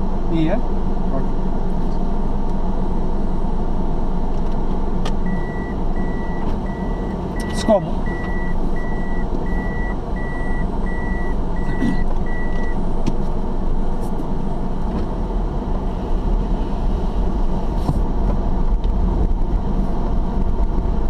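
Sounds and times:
car engine and road rumble: 0.0 - 21.0
reverse warning beeper: 5.2 - 12.8.

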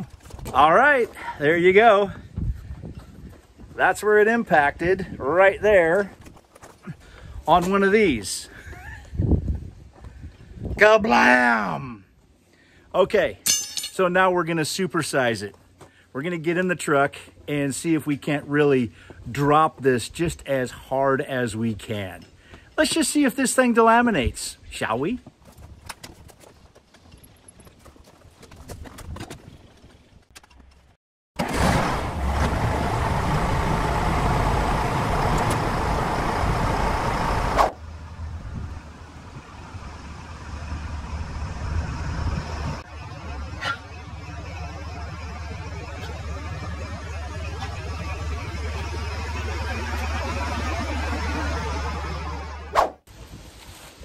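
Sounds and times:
truck engine and road noise: 29.6 - 53.4
low diesel drone: 31.4 - 52.8.

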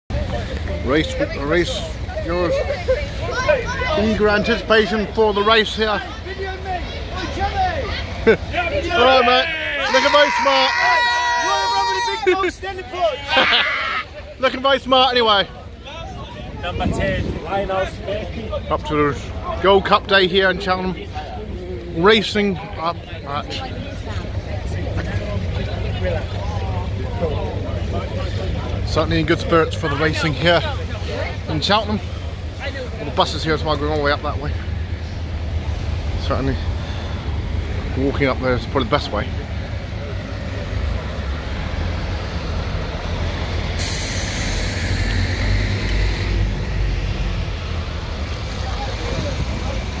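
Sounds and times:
crowd chatter: 0.1 - 50.0
idling buses and traffic rumble: 0.1 - 50.0
person laughing: 13.3 - 14.1
air brakes hissing: 43.6 - 47.1.

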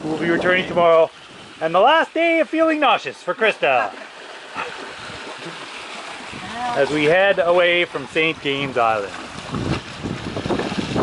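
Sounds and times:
wind buffeting microphone: 0.0 - 1.7, 4.6 - 11.0
water rushing around boat: 0.0 - 11.0.

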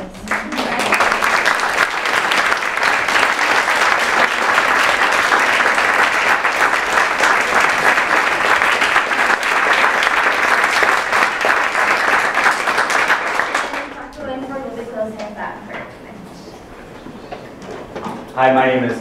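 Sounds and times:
audience applauding: 0.0 - 14.1.

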